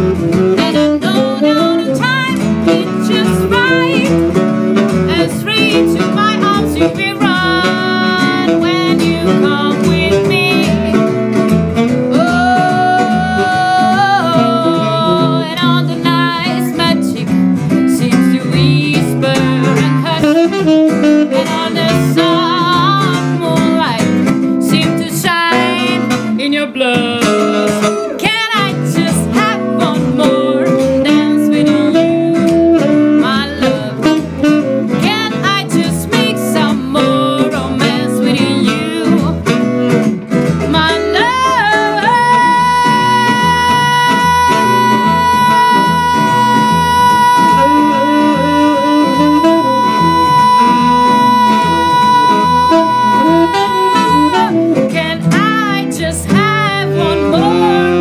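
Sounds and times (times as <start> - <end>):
saxophone melody: 0.0 - 26.3, 27.2 - 58.0
acoustic guitar strummed: 0.0 - 58.0.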